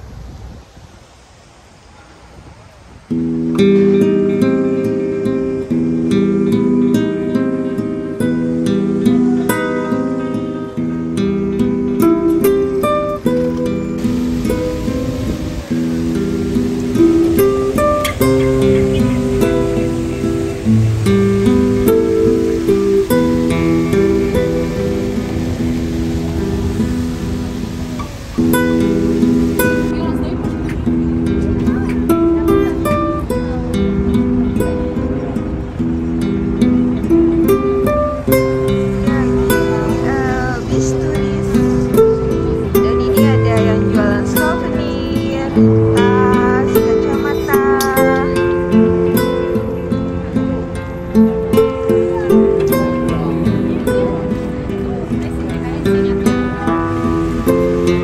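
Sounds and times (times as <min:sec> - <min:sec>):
faint street ambience: 0:00.0 - 0:58.0
music with plucked notes: 0:03.1 - 0:58.0.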